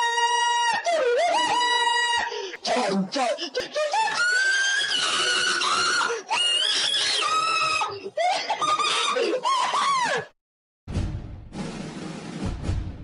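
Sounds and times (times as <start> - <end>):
high-pitched screaming: 4.1 - 8.0.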